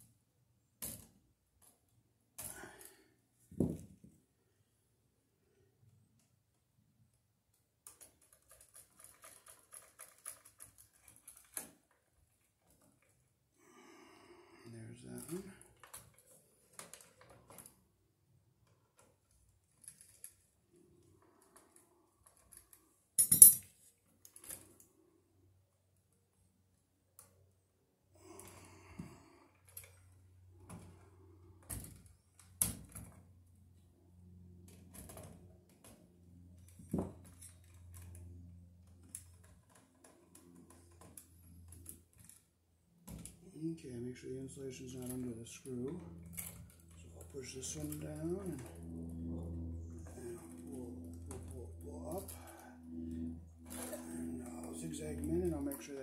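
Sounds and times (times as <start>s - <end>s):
faint low hum: 7.8s - 56.0s.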